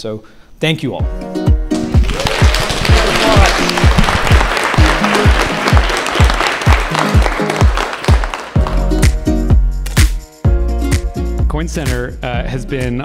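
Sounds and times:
background music with thudding beat: 1.0 - 2.0, 2.9 - 13.0
guests applauding: 1.9 - 9.2.

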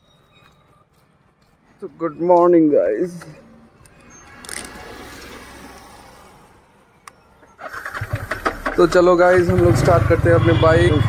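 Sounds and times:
motorcycle engine starting: 7.4 - 10.4.

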